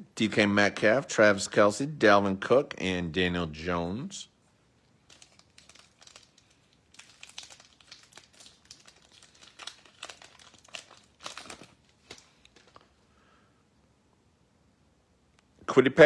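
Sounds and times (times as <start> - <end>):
foil wrapper crinkling and tearing: 5.0 - 13.0.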